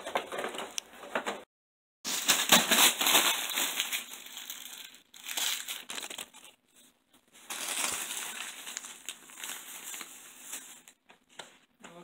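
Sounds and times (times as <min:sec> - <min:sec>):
plastic bag crinkling: 0:02.1 - 0:06.6, 0:07.3 - 0:11.0.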